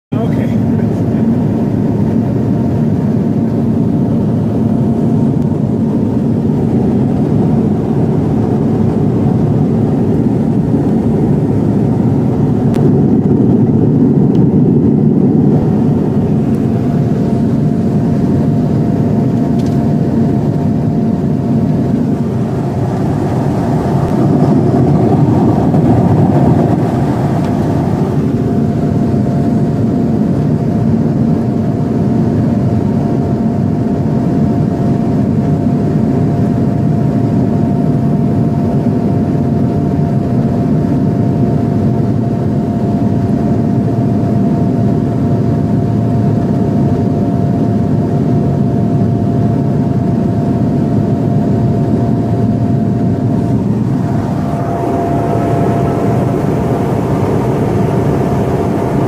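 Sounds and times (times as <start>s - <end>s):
thin steady whine: 0.1s - 59.0s
turboprop engine drone: 0.1s - 59.0s
airflow rush: 0.7s - 29.6s, 51.5s - 59.0s.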